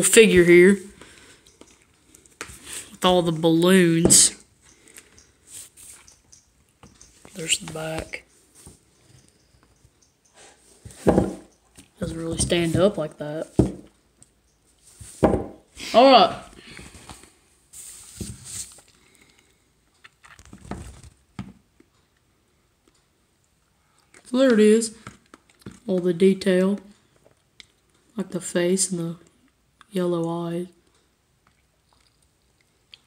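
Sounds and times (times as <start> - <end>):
soft rustles of handling: 4.6 - 13.7, 16.5 - 21.2.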